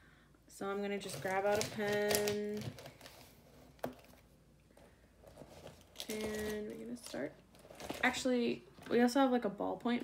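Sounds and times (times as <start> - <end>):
pens handled on paper: 1.0 - 4.2.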